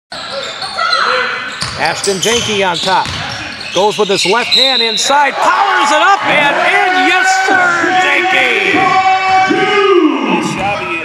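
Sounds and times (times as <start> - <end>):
basketball court sounds in gym: 0.1 - 6.1, 8.6 - 11.0
faint players' voices: 0.1 - 11.0
commentator talking: 1.7 - 11.0.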